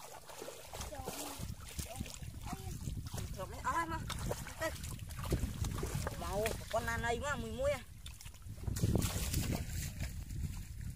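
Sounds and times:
faint knocks in muddy water: 0.0s - 10.9s
wind rumble on microphone: 0.3s - 10.9s.

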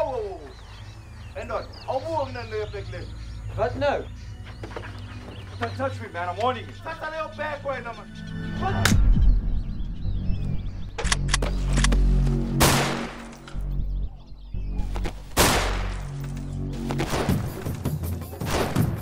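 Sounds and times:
low sustained film score: 0.0s - 17.6s
gunshots: 12.6s - 13.3s, 15.4s - 16.0s, 17.0s - 17.6s, 18.4s - 19.0s.

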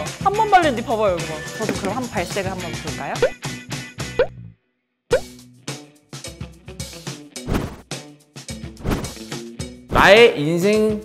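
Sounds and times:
background music: 0.0s - 11.0s
cartoon plop sound effects: 5.1s - 5.3s.

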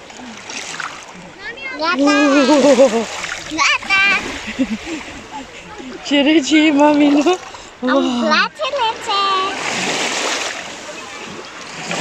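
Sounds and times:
small sea waves washing in: 0.0s - 12.0s
person crying out: 2.0s - 3.0s.

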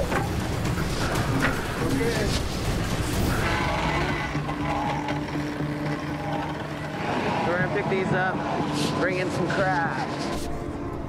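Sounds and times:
hydraulic block humming: 0.0s - 10.6s.

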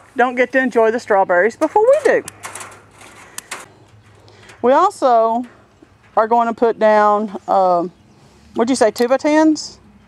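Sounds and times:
person speaking: 0.2s - 2.4s
faint rustle: 1.6s - 6.2s.

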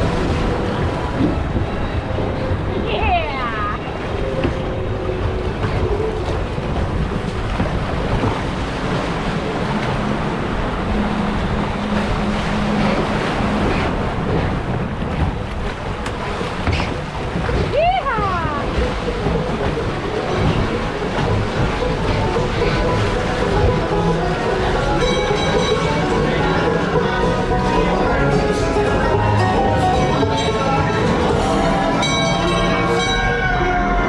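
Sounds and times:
water rushing in flume channel: 0.0s - 34.0s.

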